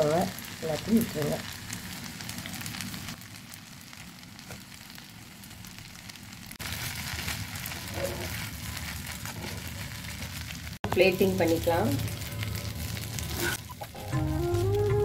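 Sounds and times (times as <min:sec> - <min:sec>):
pasta sizzling in a frying pan: 0:00.0 - 0:14.9.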